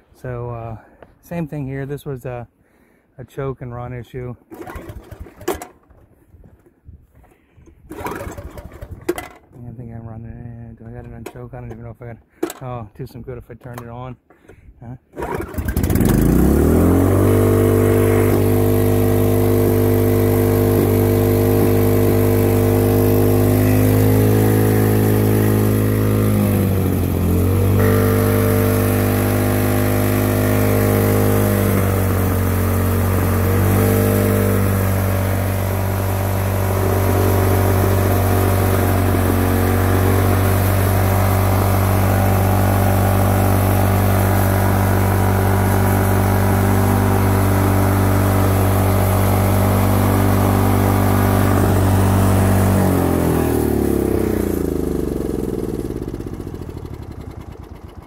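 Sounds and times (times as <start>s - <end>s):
snowblower engine running: 4.5s - 6.0s, 7.9s - 9.4s, 15.2s - 58.0s.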